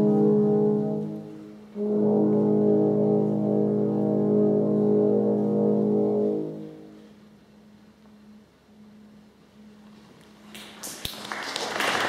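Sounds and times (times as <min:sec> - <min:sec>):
french horns playing chords: 0:00.0 - 0:09.9.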